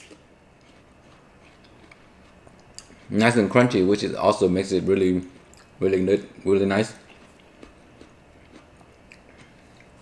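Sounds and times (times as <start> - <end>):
faint chewing of melon: 0.0 - 10.0.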